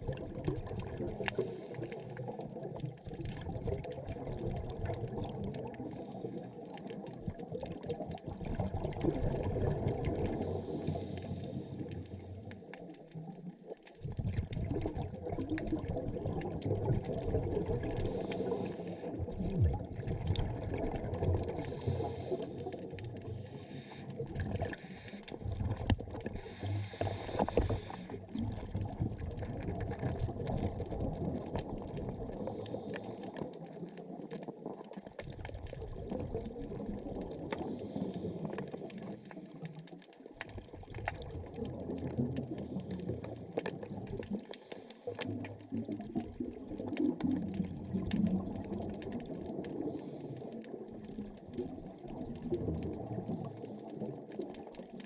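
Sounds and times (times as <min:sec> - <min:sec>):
bubbling exhaust bubbles: 0:00.0 - 0:13.3, 0:14.0 - 0:39.6, 0:40.4 - 0:55.0
diver breathing through regulator: 0:18.0 - 0:19.2, 0:21.5 - 0:25.6, 0:26.2 - 0:28.3, 0:32.4 - 0:33.4, 0:37.6 - 0:38.6, 0:49.8 - 0:50.6.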